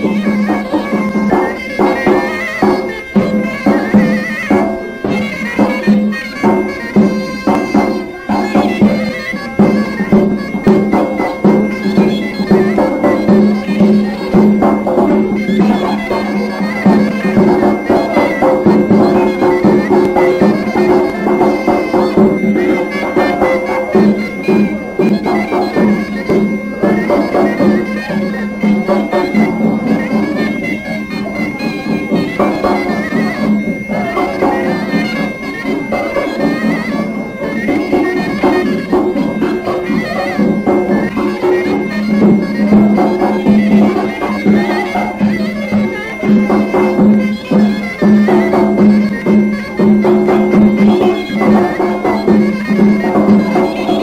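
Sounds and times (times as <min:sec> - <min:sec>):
nasal shawm melody with drone: 0:00.0 - 0:54.0.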